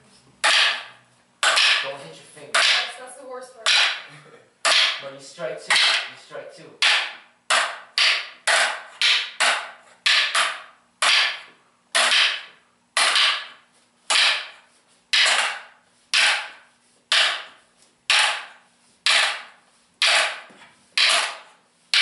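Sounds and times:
wooden training sticks clacking: 0.4 - 3.0, 3.6 - 5.1, 5.7 - 6.2, 6.8 - 22.0.

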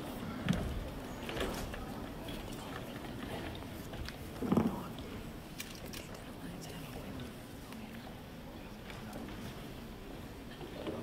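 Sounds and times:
audience murmur in a hall: 0.0 - 11.0.

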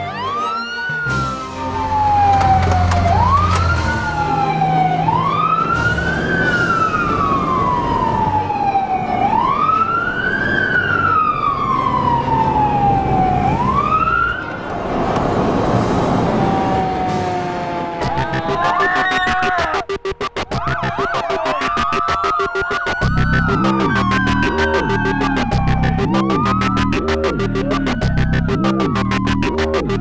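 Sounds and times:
emergency vehicle siren wailing: 0.0 - 14.7, 15.5 - 30.0
rushing noise: 15.0 - 30.0.

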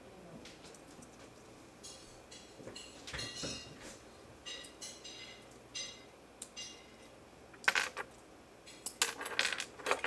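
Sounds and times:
plastic bricks clicking and clattering: 9.0 - 10.0.

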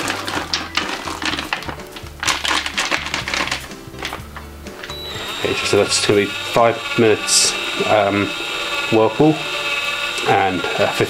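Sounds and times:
foil bag crinkling and rattling: 0.0 - 5.0
background music with bass line: 0.0 - 6.4.

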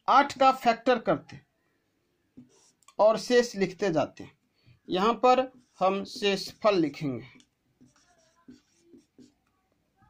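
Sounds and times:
marker scratching on paper: 2.4 - 4.2, 4.9 - 9.7.

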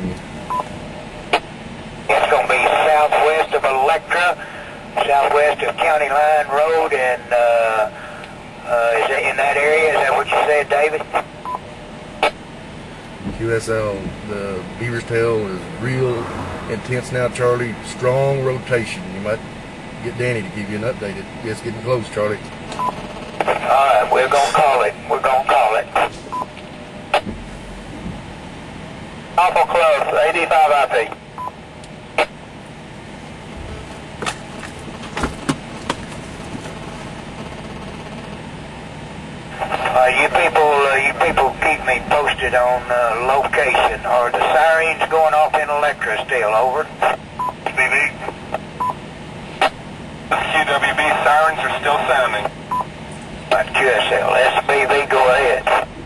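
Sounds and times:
steady radio hiss: 0.0 - 56.0
vehicle cab hum: 0.0 - 56.0.

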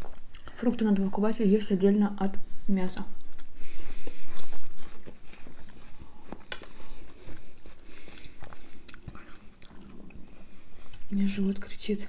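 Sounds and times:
chewing watermelon: 0.0 - 0.8, 3.2 - 11.5.

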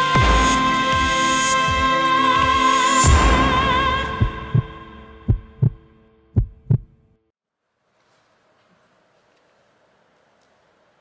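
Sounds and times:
heartbeat thumps: 4.1 - 5.8, 6.4 - 7.0.

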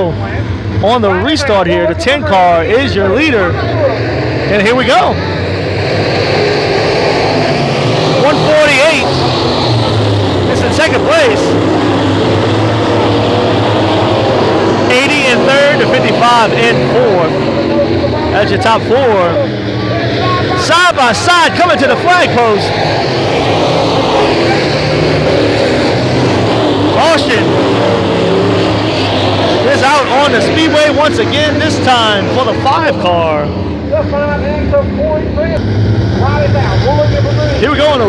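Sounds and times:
race car engines droning: 0.0 - 38.0.

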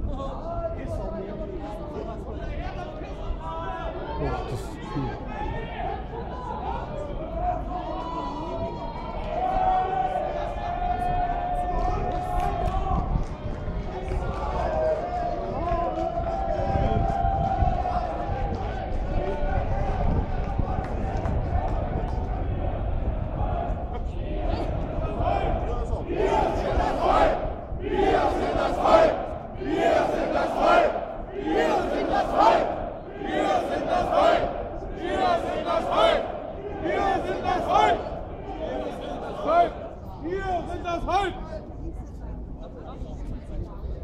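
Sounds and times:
crowd hubbub: 0.0 - 44.0
crowd chanting slogan: 13.8 - 40.0.

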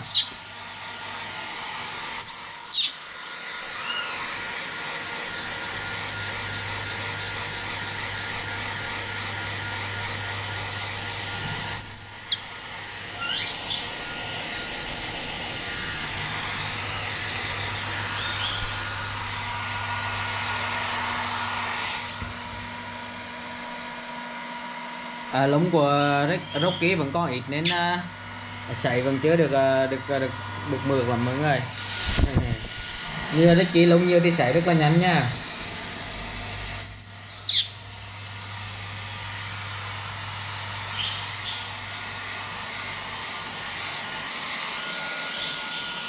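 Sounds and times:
baby monkey squealing: 0.0 - 0.3, 2.2 - 3.0, 3.8 - 4.2, 11.7 - 12.4, 13.2 - 13.9, 18.2 - 18.8, 26.3 - 27.8, 36.8 - 37.7, 41.0 - 41.7
hair dryer blowing: 0.0 - 46.0.

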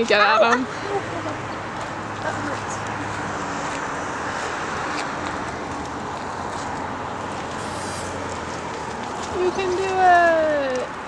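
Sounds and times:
road traffic rushing: 0.0 - 11.0.

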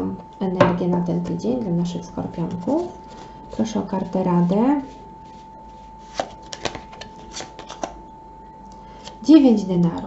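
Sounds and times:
cards being shuffled: 5.2 - 8.0.

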